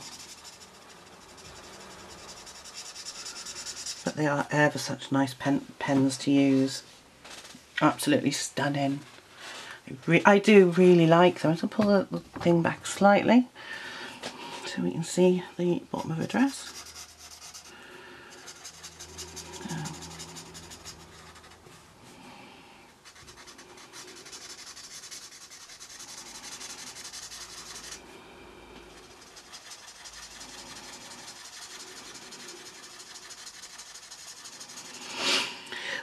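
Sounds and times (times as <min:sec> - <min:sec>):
marker rubbing on paper: 0:00.0 - 0:04.2, 0:16.6 - 0:21.6, 0:23.0 - 0:28.0, 0:29.0 - 0:35.5.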